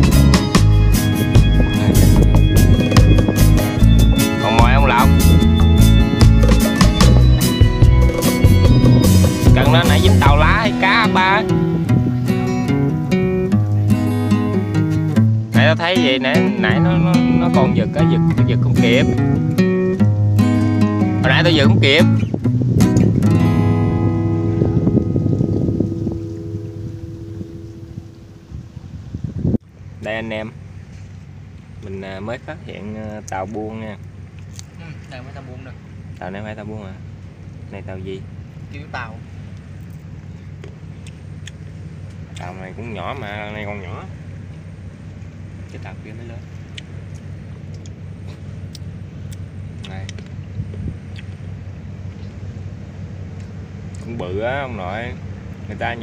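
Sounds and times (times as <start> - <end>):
acoustic guitar chord strummed: 0.0 - 28.6
ship engine drone: 0.0 - 56.0
faint ticks: 46.6 - 51.5.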